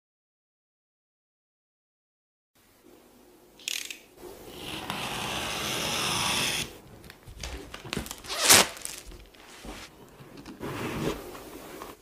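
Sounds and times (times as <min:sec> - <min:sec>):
plastic film crinkling: 0:07.0 - 0:09.9
plastic shrink-wrap tearing: 0:07.4 - 0:09.6.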